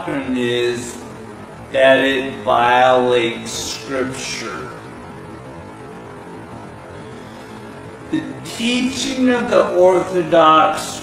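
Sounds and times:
droning background music: 0:00.0 - 0:11.0.

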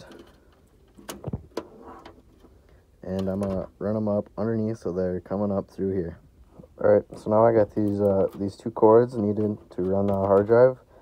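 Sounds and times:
cables rustling: 0:00.0 - 0:04.5, 0:06.4 - 0:10.8.

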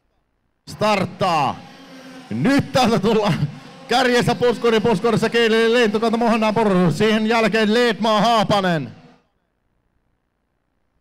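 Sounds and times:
man's voice: 0:00.7 - 0:01.7, 0:02.3 - 0:09.0.

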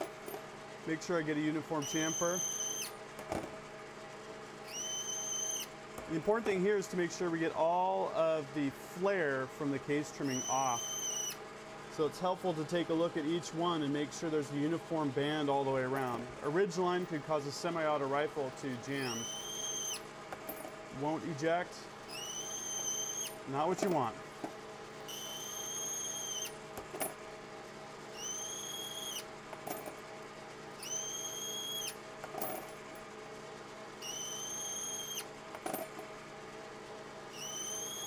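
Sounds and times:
high squeal of metal cutting: 0:01.8 - 0:03.0, 0:04.7 - 0:05.7, 0:10.2 - 0:11.4, 0:19.0 - 0:20.0, 0:22.1 - 0:23.4, 0:25.1 - 0:26.5, 0:28.1 - 0:29.2, 0:30.8 - 0:32.0, 0:34.0 - 0:35.3, 0:37.3 - 0:38.0.

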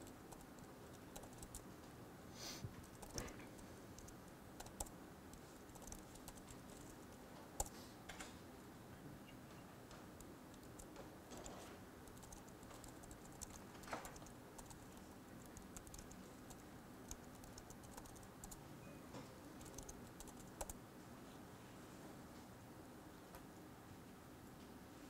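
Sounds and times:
laptop keyboard typing: 0:00.0 - 0:01.6, 0:02.8 - 0:07.7, 0:10.2 - 0:18.6, 0:19.6 - 0:20.8
low room hum: 0:00.0 - 0:25.0.

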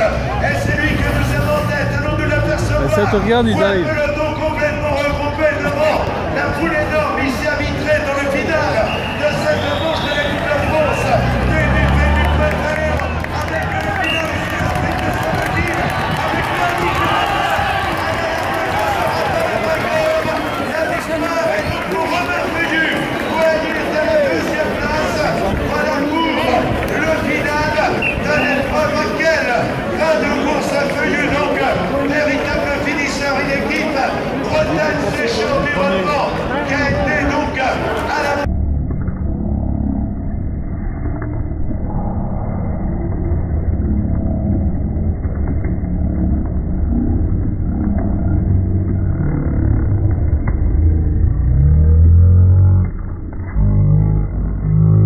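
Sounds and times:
crowd chatter: 0:00.0 - 0:38.5
man commentating over loudspeakers: 0:00.0 - 0:38.5.

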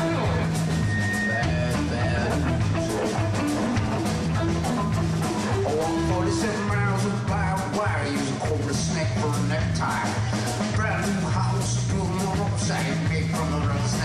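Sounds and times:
drum kit beat: 0:00.0 - 0:14.0
electric guitar: 0:00.0 - 0:14.0
sustained bass notes: 0:00.0 - 0:14.0.

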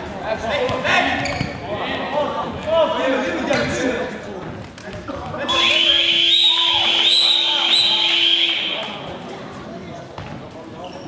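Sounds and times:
echoing play on hardwood court: 0:00.0 - 0:11.0
buzzer tone: 0:05.5 - 0:07.0
short squeaks: 0:10.8 - 0:11.0.

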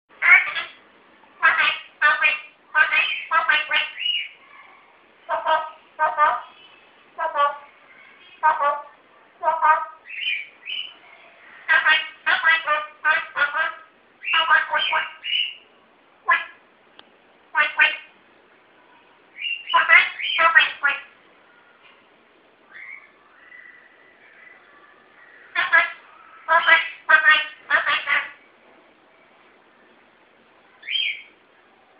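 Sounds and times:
parrot mimicking speech: 0:00.2 - 0:00.8, 0:01.4 - 0:04.3, 0:05.3 - 0:06.5, 0:07.2 - 0:07.6, 0:08.4 - 0:10.2, 0:11.7 - 0:15.6, 0:17.5 - 0:18.1, 0:19.4 - 0:21.1, 0:25.5 - 0:28.4.

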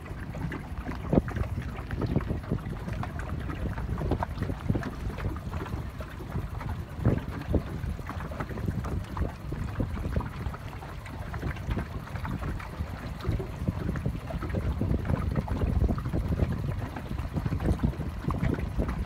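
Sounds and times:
waves slapping boat hull: 0:00.0 - 0:19.0
wind buffeting microphone: 0:00.0 - 0:19.0.

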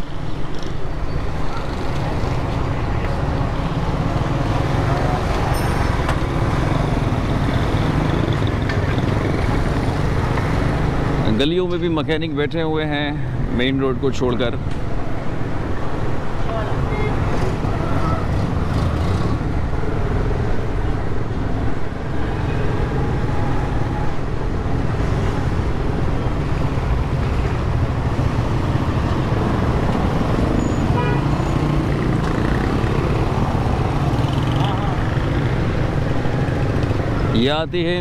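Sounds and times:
traffic engine rumble: 0:00.0 - 0:38.0.

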